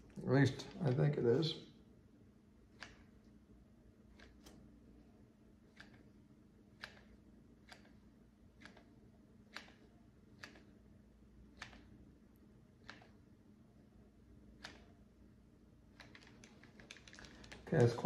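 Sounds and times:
low room hum: 0.0s - 18.0s
glue gun trigger clicks: 2.8s - 3.1s, 6.7s - 8.0s, 8.6s - 8.9s, 9.5s - 10.8s, 11.5s - 12.0s, 12.8s - 13.2s.

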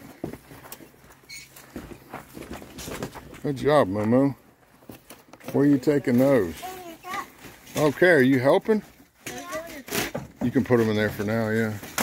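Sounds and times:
rustling of camp gear handled: 0.0s - 12.0s
brief high squeak: 1.3s - 1.5s.

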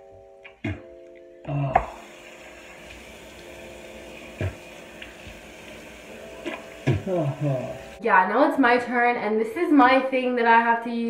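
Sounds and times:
tap running into sink: 2.8s - 7.8s.

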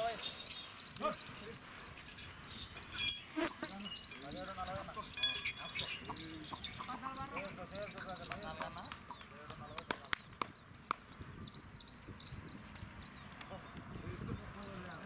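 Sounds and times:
men talking: 0.0s - 2.3s, 3.0s - 10.4s, 13.4s - 15.0s
small birds chirping: 0.0s - 15.0s.

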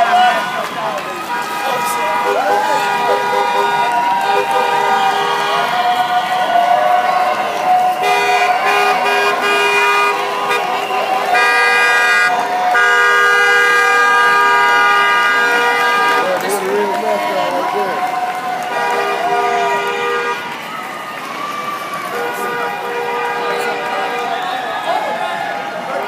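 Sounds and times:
voices calling out: 0.0s - 26.0s
vehicle horn honking: 1.3s - 5.7s, 8.0s - 16.6s, 18.7s - 20.5s, 22.1s - 24.3s.

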